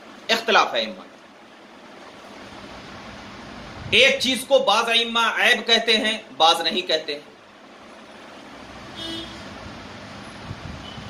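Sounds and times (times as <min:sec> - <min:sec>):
background hum and hiss: 0:00.0 - 0:11.0.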